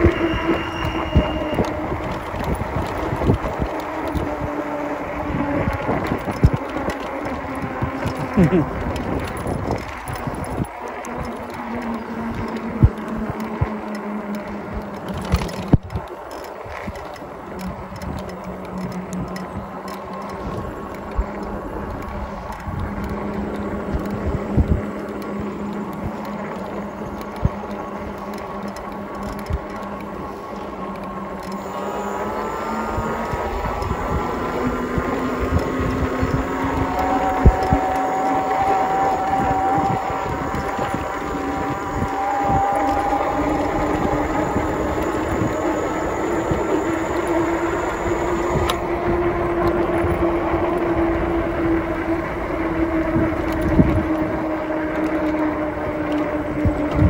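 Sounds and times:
electric bike motor whining: 0.0s - 57.0s
wheels knocking over tracks: 0.0s - 57.0s.

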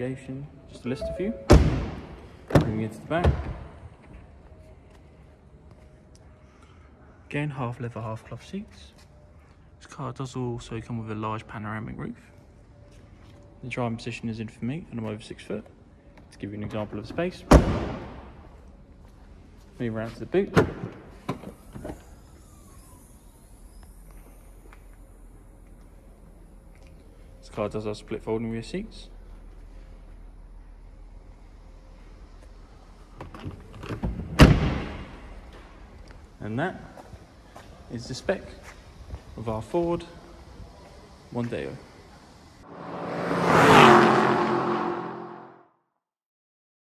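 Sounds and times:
car-like whoosh: 42.6s - 45.6s.

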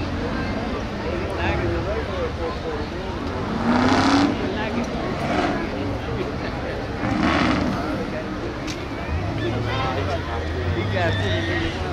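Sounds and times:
race car engines running: 0.0s - 11.9s
car accelerating past: 3.3s - 6.0s, 6.9s - 8.1s.

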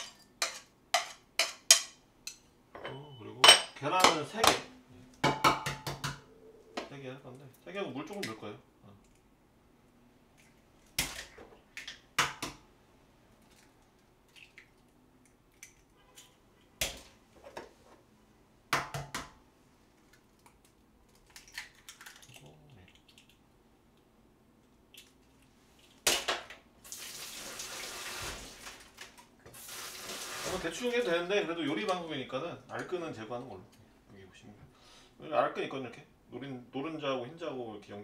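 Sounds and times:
eggs cracking on bowl rim: 14.3s - 16.3s, 20.1s - 24.0s
tap water running: 26.8s - 30.8s.

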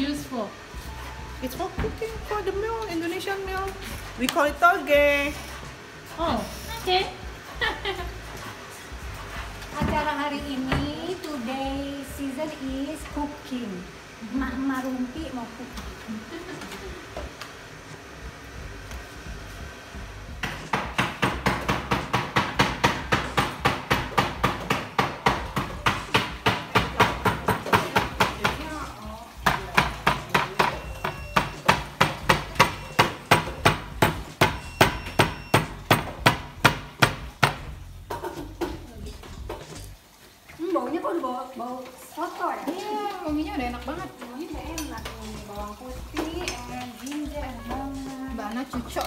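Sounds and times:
knife chopping on wooden board: 20.4s - 28.7s, 29.4s - 38.8s.

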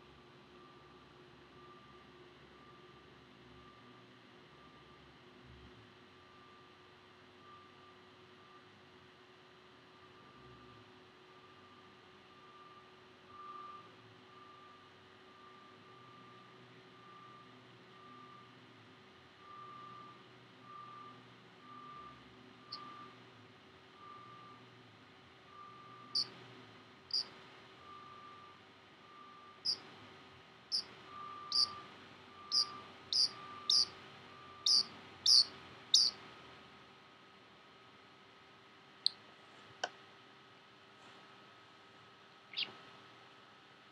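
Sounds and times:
faint electronic beep: 0.6s - 5.1s, 7.4s - 8.8s, 11.4s - 18.6s, 19.4s - 23.2s, 24.0s - 24.6s, 25.5s - 26.4s, 27.1s - 29.9s, 30.7s - 36.2s
parrot high chirps: 30.7s - 31.8s, 32.5s - 33.9s, 34.6s - 36.2s, 42.5s - 42.7s.

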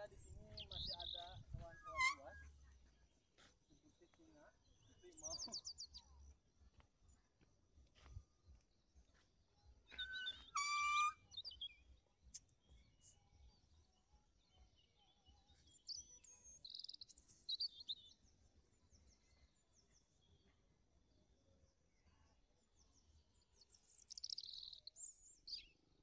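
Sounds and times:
birds calling: 0.0s - 2.6s, 9.9s - 11.9s
faint outdoor background: 0.0s - 26.0s.

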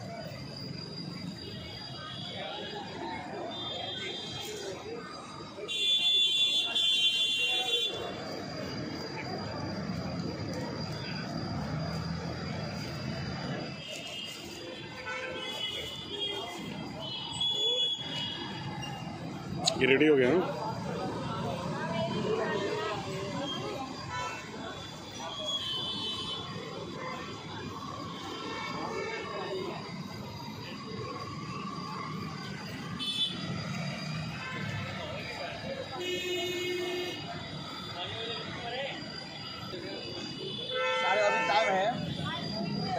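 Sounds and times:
street traffic rumble: 0.0s - 42.9s
faint high whine: 7.6s - 19.8s
vehicle horn: 33.0s - 33.4s, 40.6s - 41.8s.

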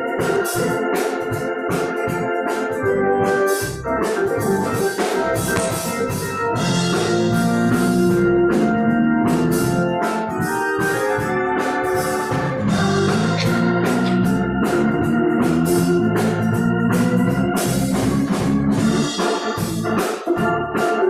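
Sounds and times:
organ playing: 0.0s - 21.0s
drum and cymbal beat: 4.8s - 7.3s, 12.6s - 16.7s.

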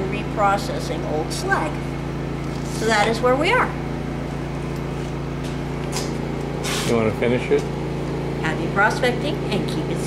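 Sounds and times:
electric motor hum: 0.0s - 10.0s.

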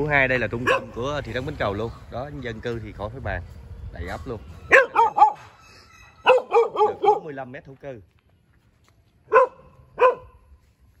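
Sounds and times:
dog barking: 0.6s - 1.0s, 4.7s - 5.5s, 6.2s - 7.4s, 9.3s - 10.4s.

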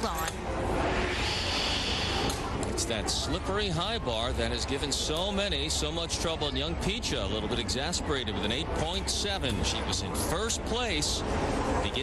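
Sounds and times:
hissing whoosh: 0.6s - 2.7s.

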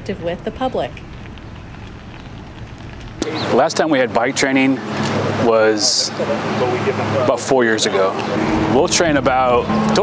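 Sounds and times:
low rumble: 0.0s - 3.4s, 8.2s - 10.0s.

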